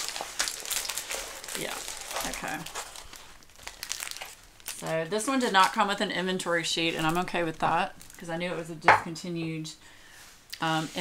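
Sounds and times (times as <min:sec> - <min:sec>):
plastic film crinkling: 0:00.0 - 0:08.7, 0:10.5 - 0:11.0.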